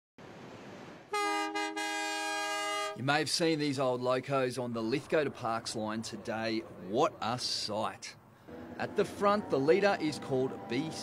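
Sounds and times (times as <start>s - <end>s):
diesel locomotive horn: 1.1s - 3.0s
passing train rumble: 3.7s - 11.0s.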